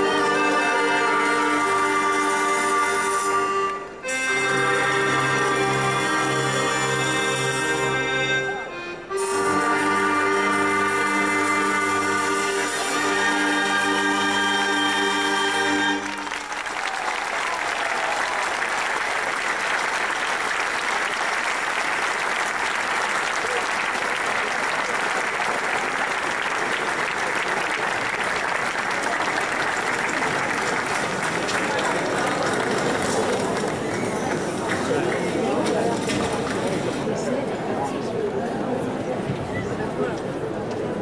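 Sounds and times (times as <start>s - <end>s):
audience applause: 12.2s - 37.1s.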